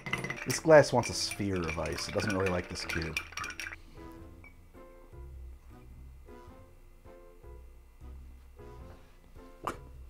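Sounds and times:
ice cube clinking against glass: 0.0 - 3.8
soft background music: 0.2 - 10.0.

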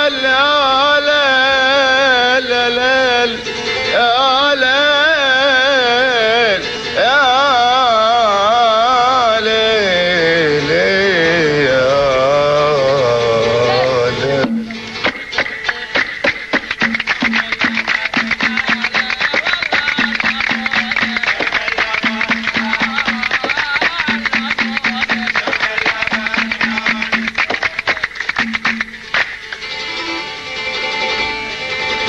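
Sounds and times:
person singing: 0.0 - 16.6, 17.2 - 28.2
folk band music: 0.0 - 32.0.

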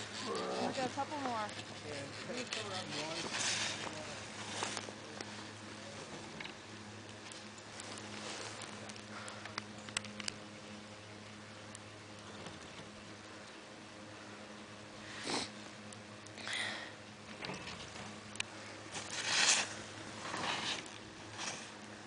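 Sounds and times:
steady low hum: 0.0 - 22.0
skis sliding on snow: 1.9 - 4.8, 19.0 - 21.7
person breathing: 9.1 - 9.6, 16.4 - 17.0.

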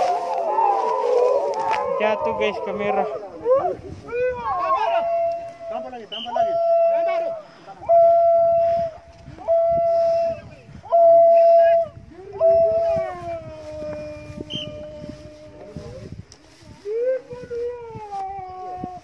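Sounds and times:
men's high war cries: 0.0 - 15.7.

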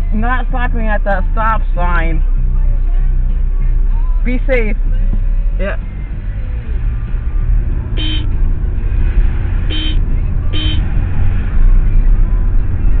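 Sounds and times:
car driving rumble inside cabin: 0.0 - 13.0
car horn toots: 8.0 - 8.4, 9.6 - 10.9.

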